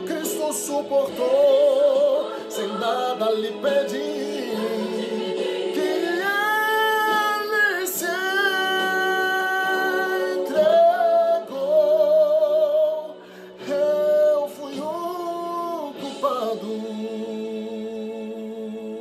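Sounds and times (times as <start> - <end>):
man singing gospel ballad: 0.0 - 19.0.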